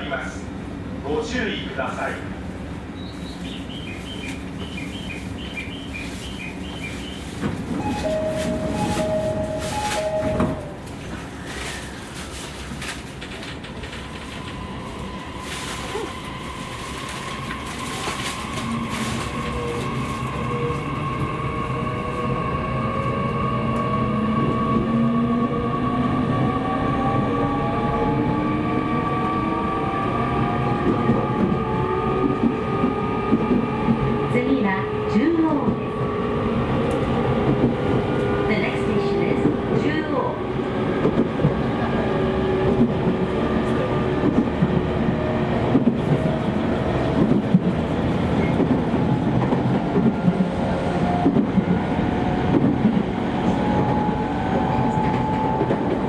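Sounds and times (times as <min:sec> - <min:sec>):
wheels rumbling on rails: 0:02.3 - 0:56.0.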